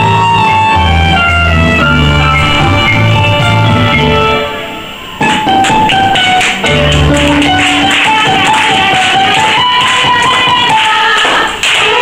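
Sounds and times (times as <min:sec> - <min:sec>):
violin playing lively melody: 0:00.0 - 0:11.2
keyboard accompaniment: 0:00.0 - 0:11.6
audience clapping along: 0:05.2 - 0:12.0.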